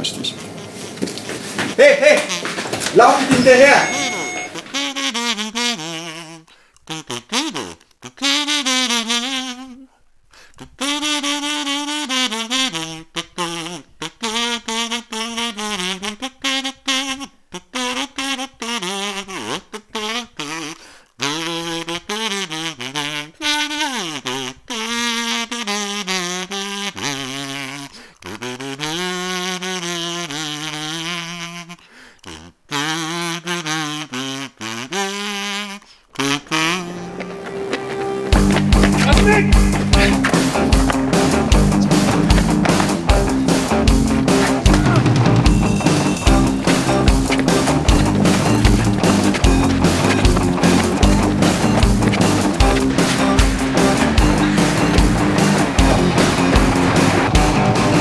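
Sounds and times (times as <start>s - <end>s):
harmonica melody: 1.8s - 9.8s, 10.8s - 27.7s, 32.7s - 58.0s.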